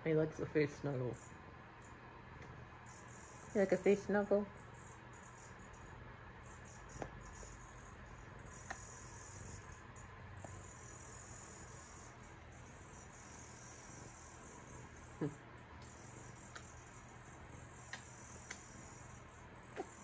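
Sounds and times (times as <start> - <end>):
faint high-pitched buzz: 0.0 - 20.0.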